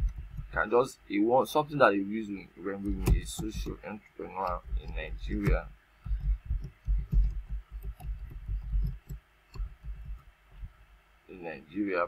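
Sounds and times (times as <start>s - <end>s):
computer keyboard typing: 0.0s - 0.6s, 2.8s - 3.8s, 4.4s - 10.7s.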